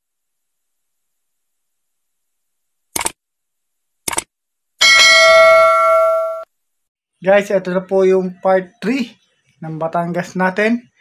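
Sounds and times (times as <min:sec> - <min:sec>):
bright bell ding: 0:04.8 - 0:06.5.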